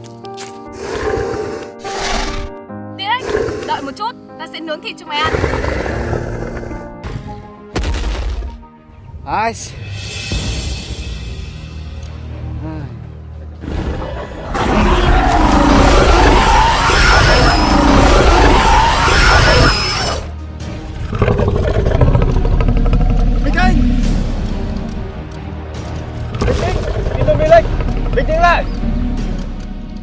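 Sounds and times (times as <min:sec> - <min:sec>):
background music: 0:00.0 - 0:30.0
dinosaur roar: 0:05.2 - 0:06.9, 0:13.6 - 0:20.3, 0:21.0 - 0:24.1, 0:26.3 - 0:29.7
low rumbling: 0:20.8 - 0:30.0.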